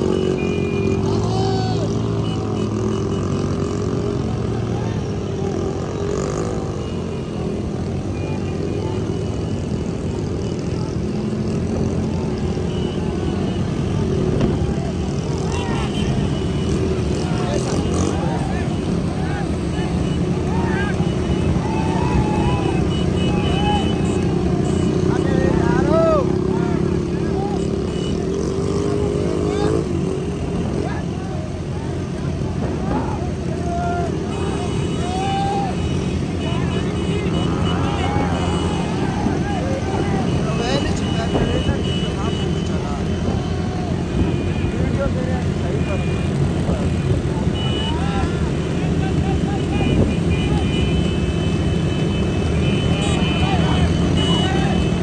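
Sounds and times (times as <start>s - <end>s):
motorcycle engines droning: 0.0s - 55.0s
men shouting: 1.0s - 2.1s, 17.1s - 24.4s, 25.3s - 27.7s, 32.7s - 42.0s, 43.0s - 44.5s.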